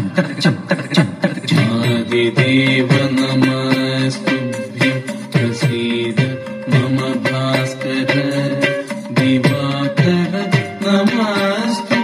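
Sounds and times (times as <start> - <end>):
sharp percussion strokes: 0.0 - 12.0.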